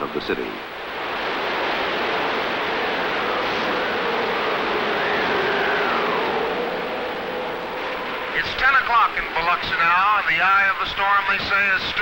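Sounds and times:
wind and water rushing: 0:00.0 - 0:12.0
faint wind whistle: 0:02.7 - 0:08.4.

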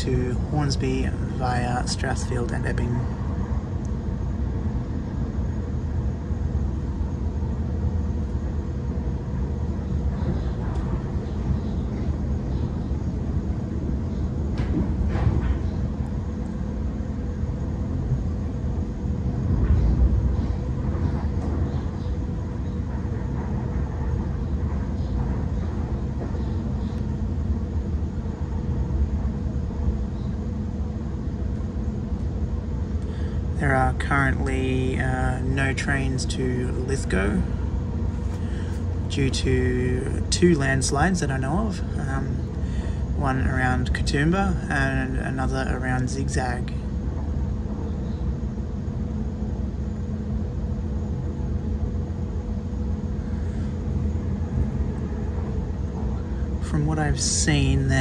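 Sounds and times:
faint constant tone: 0:00.0 - 0:58.0
train interior rumble: 0:00.0 - 0:58.0.

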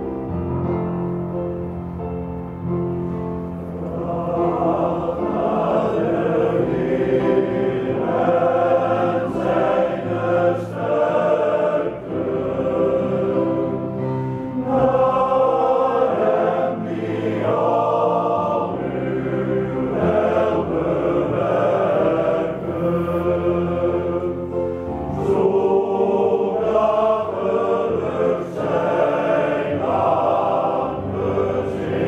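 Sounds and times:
men's choir singing: 0:03.7 - 0:32.0.

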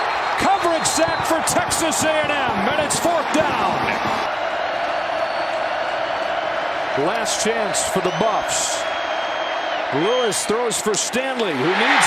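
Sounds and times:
stadium crowd din: 0:00.0 - 0:12.0.

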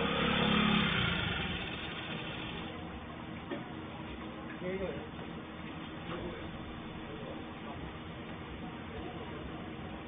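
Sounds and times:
small motorcycle engine: 0:00.0 - 0:02.8.

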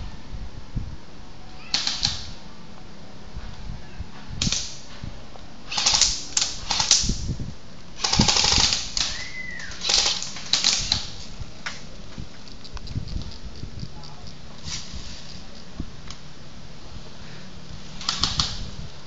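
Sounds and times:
airsoft gun rapid-fire clicks: 0:05.7 - 0:07.2, 0:08.0 - 0:11.2, 0:18.0 - 0:18.6.

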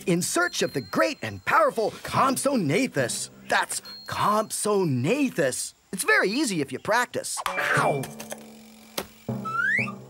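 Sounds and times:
rising slide-whistle glide: 0:09.4 - 0:10.0.

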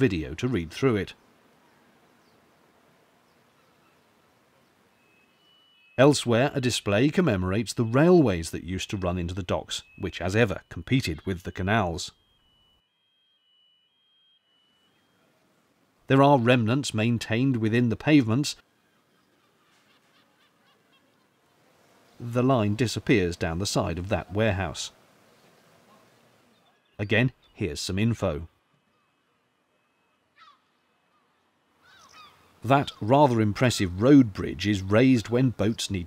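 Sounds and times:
faint high steady tone: 0:00.0 - 0:30.9
faint bird call: 0:18.7 - 0:22.2, 0:28.8 - 0:34.0.

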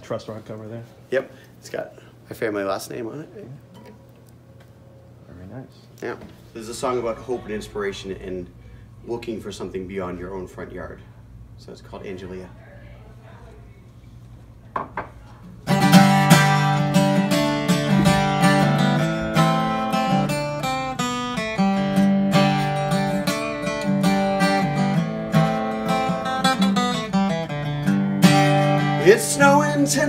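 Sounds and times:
acoustic guitar strumming chords: 0:15.6 - 0:30.0.

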